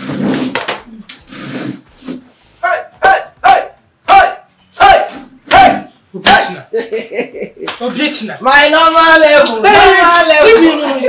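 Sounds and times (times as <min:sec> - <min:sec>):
dog barking: 0:02.6 - 0:05.9.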